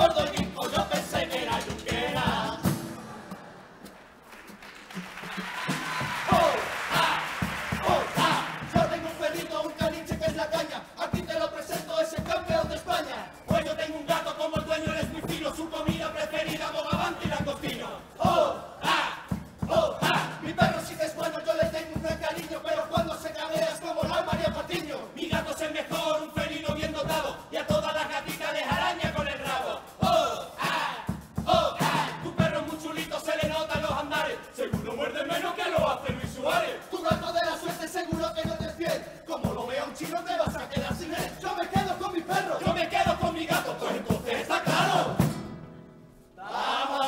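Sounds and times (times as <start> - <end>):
bass drum and snare strikes: 0.0 - 3.2, 5.2 - 45.6
male chorus group yell: 5.5 - 24.8, 25.4 - 38.7, 40.4 - 45.2, 46.4 - 47.0.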